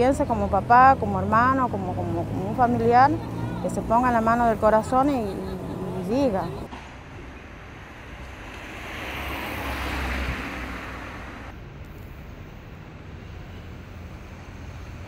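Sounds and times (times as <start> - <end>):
vehicle passing: 0.0 - 6.7, 7.6 - 11.6
traffic hum: 0.0 - 15.0.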